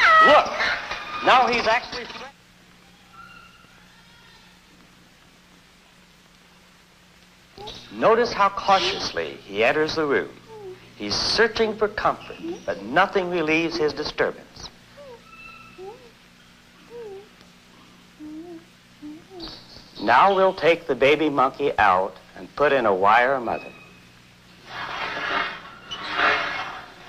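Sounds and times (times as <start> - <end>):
film soundtrack hiss and hum: 0.0 - 27.0
baby monkey calling: 2.8 - 4.4, 7.6 - 8.0, 15.0 - 17.4, 18.2 - 20.6.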